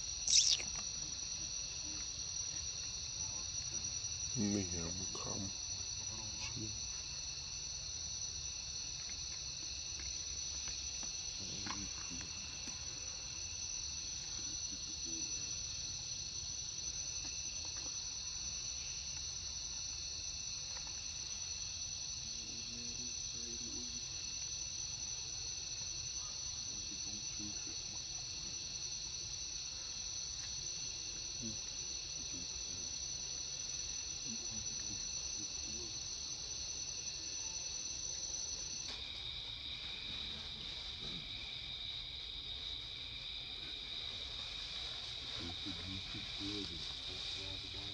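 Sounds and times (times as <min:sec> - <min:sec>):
insects buzzing: 0:00.0 - 0:47.9.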